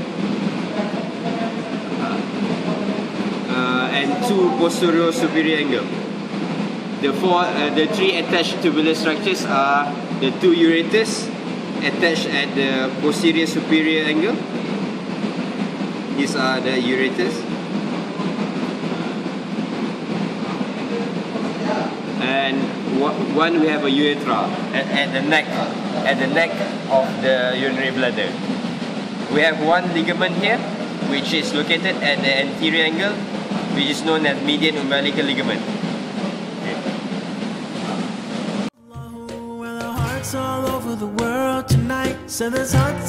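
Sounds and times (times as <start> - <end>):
room noise rumble and hiss: 0.0 - 38.7.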